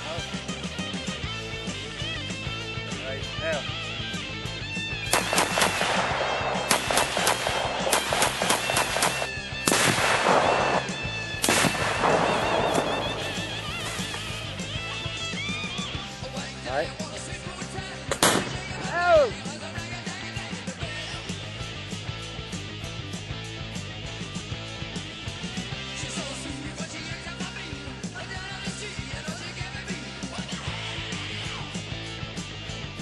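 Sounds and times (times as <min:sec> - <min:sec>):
rock music: 0:00.0 - 0:33.0
loud gunshots: 0:05.1 - 0:14.7, 0:18.1 - 0:18.9
large blasts: 0:05.1 - 0:14.8.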